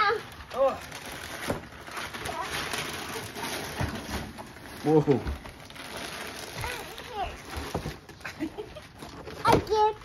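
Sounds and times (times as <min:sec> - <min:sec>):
wrapping paper rustling: 0:00.0 - 0:10.0.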